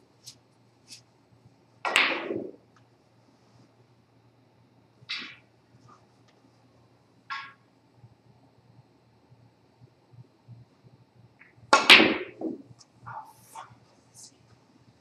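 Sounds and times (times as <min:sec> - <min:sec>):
snooker balls clicking: 0:01.8 - 0:02.9, 0:05.1 - 0:05.5, 0:07.3 - 0:07.7, 0:11.4 - 0:13.3
cue ball sharp clack: 0:01.9 - 0:02.6, 0:05.1 - 0:05.4, 0:07.3 - 0:07.6, 0:11.7 - 0:12.6.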